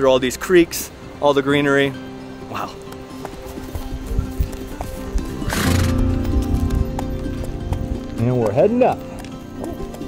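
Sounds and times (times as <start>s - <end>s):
background music held tones: 0.0s - 10.0s
hooves clopping on grass: 1.6s - 10.0s.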